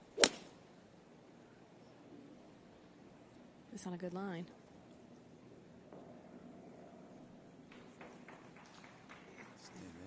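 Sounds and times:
golf club hitting ball: 0.2 - 0.5.

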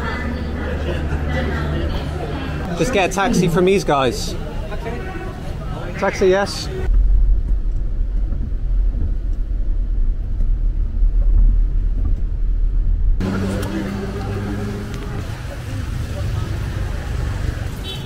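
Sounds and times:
engine hum: 0.0 - 5.9, 6.7 - 18.0
street noise: 0.0 - 18.0
road rumble inside car: 6.8 - 18.0.

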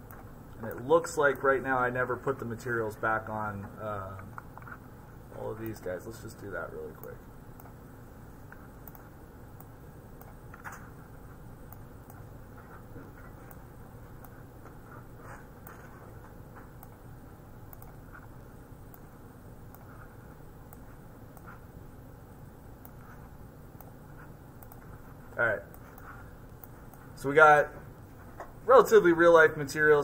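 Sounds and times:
low room hum: 0.0 - 30.0
computer mouse clicks: 7.0 - 7.8, 8.5 - 11.0, 17.6 - 19.1, 19.7 - 20.1, 20.7 - 21.6, 24.6 - 27.1.

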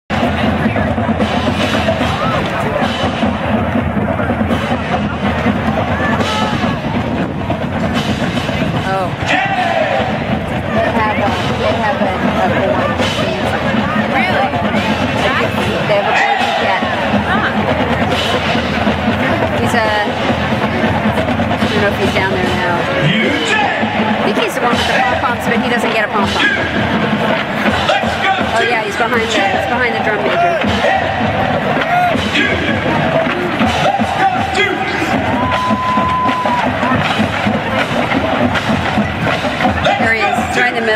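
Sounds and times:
drums: 0.1 - 40.9
marching band playing: 0.1 - 40.9
spectators talking: 0.1 - 40.9.

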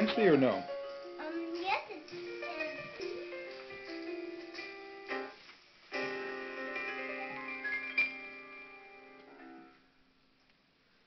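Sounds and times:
piano-like keyboard chords: 0.0 - 9.9.

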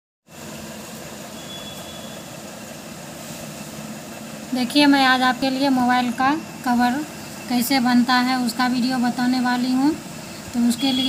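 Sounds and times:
background hum and hiss: 0.3 - 11.0.

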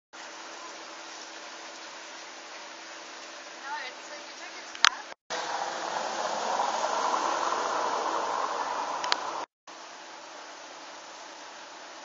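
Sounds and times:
rushing outdoor background noise: 0.2 - 12.0.

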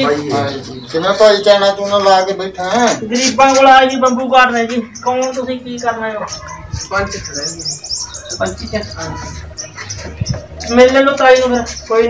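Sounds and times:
men's voices: 0.0 - 12.0
small birds chirping: 0.0 - 12.0.

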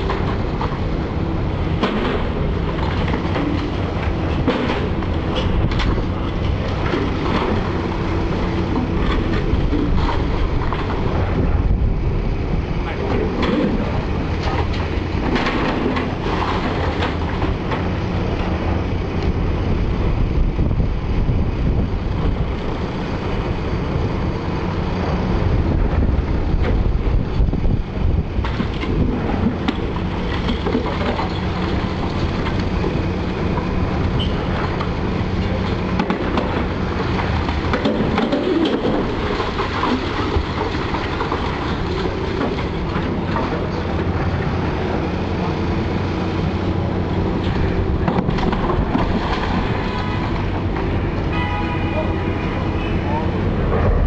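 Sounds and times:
excavator diesel engine running: 0.0 - 54.0.

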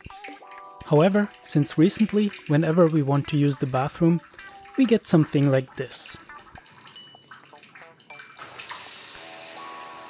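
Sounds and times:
tap running into washbasin: 0.0 - 10.0.

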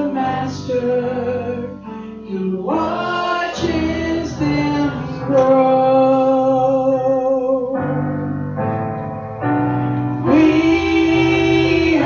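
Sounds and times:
woman singing worship song: 0.0 - 7.7, 10.2 - 12.0
keyboard accompaniment: 0.0 - 12.0.

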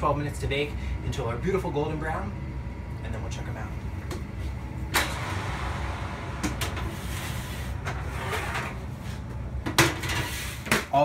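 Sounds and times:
steady low hum: 0.0 - 10.7.

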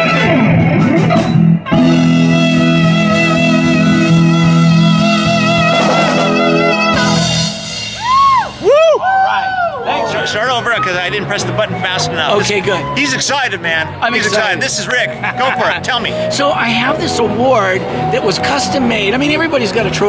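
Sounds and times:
live rock band playing: 0.0 - 9.3, 10.2 - 20.0
swooping rising and falling notes: 0.0 - 19.1.

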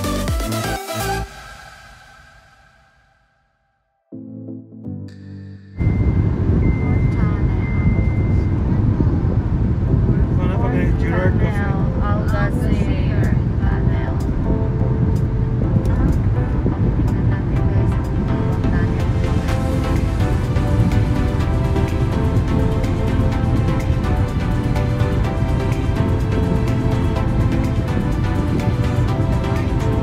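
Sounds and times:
music: 0.0 - 30.0
high steady tone: 5.1 - 30.0
car road and engine rumble: 5.8 - 30.0.

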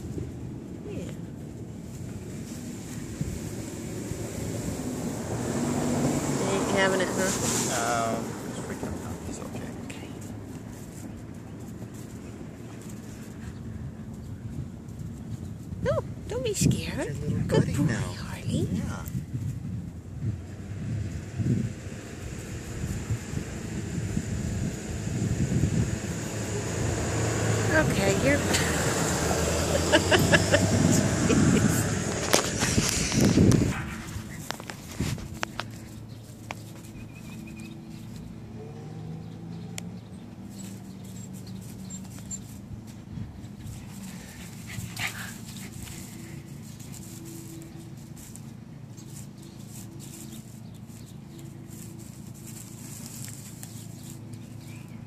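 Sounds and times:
dogs playing: 0.0 - 19.1, 26.2 - 55.0
wind buffeting microphone: 0.0 - 36.3, 42.6 - 46.8.

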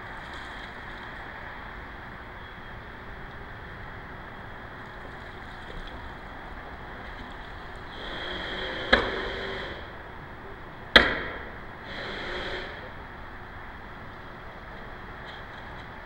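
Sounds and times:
wind hiss: 0.0 - 15.2
sharp knocks: 8.9 - 9.3, 10.9 - 11.6
camera pan motor whirring: 11.8 - 12.9.

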